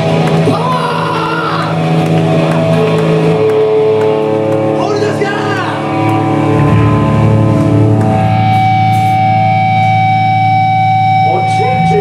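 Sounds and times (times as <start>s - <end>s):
distorted guitar and bass chord: 0.0s - 12.0s.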